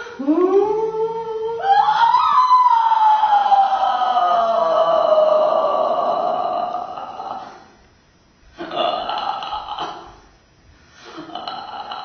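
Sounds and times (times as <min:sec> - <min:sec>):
woman vocalizing: 0:00.0 - 0:07.8.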